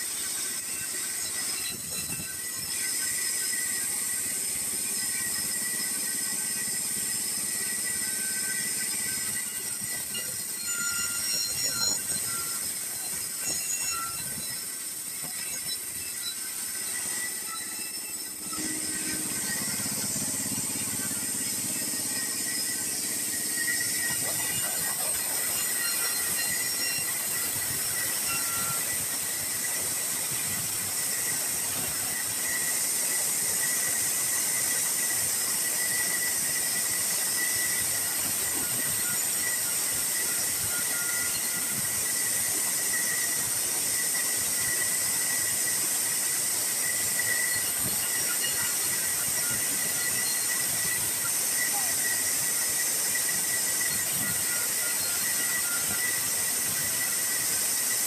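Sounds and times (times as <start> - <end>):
bandsaw mill sawing timber: 16.4 - 35.1.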